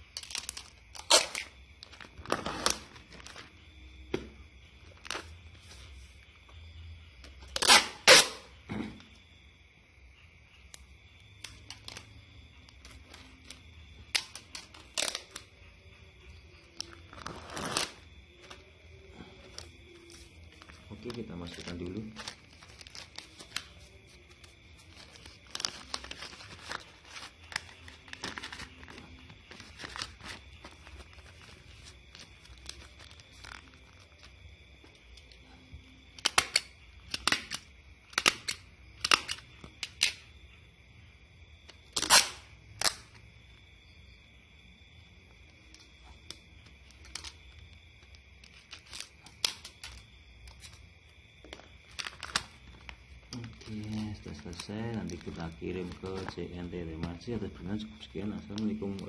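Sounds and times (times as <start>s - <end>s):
packaging rustling and clicking: 0.0s - 3.5s, 19.4s - 35.4s, 51.4s - 57.2s.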